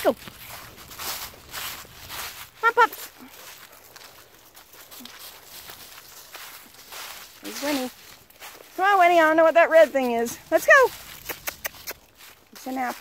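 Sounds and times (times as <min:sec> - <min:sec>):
footsteps crunching through dry leaves: 0:00.0 - 0:13.0.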